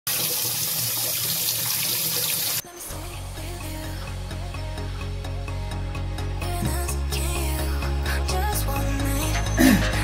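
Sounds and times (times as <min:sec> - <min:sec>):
water spraying from pipe: 0:00.1 - 0:02.6
background music with beat: 0:02.6 - 0:10.0.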